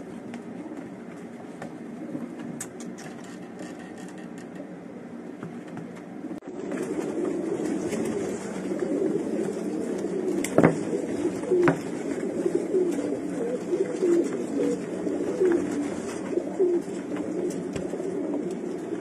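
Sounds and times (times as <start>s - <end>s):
pigeons cooing: 0.0s - 3.0s, 4.4s - 19.0s.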